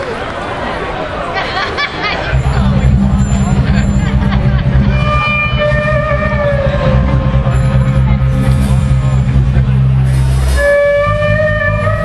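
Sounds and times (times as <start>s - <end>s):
crowd chatter: 0.0s - 12.0s
band low drone: 2.3s - 12.0s
held higher note: 2.3s - 12.0s.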